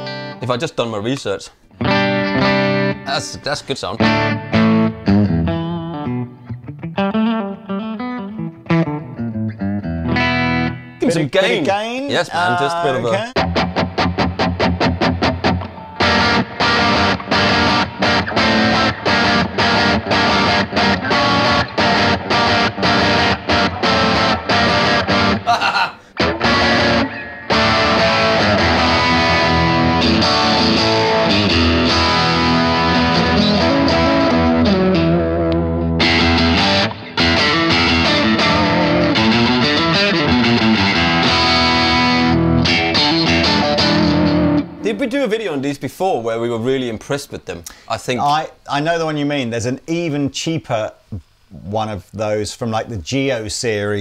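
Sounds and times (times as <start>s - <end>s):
distorted electric guitar: 0.0s - 0.4s, 1.7s - 11.0s, 12.9s - 45.0s.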